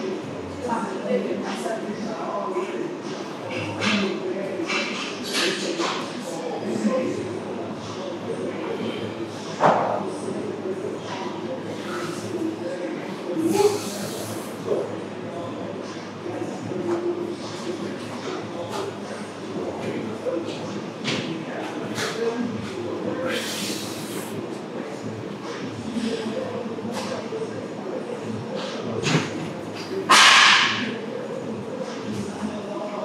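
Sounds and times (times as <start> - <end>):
loud hissing bursts: 23.3 - 24.3.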